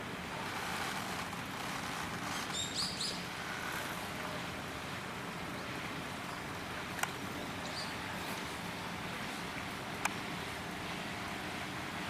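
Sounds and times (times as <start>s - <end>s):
outdoor background noise: 0.0s - 12.0s
high bird chirps: 2.5s - 3.2s.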